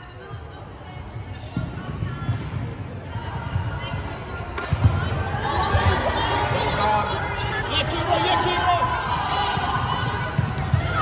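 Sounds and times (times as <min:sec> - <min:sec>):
voices echoing in hall: 0:00.0 - 0:11.0.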